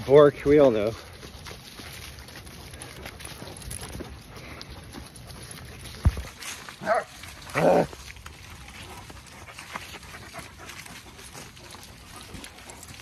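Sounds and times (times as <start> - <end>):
footsteps on fallen leaves: 0.0 - 13.0.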